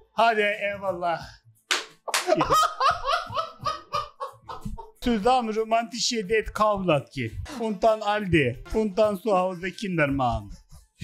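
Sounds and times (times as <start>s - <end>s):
man laughing hard: 2.1s - 5.0s.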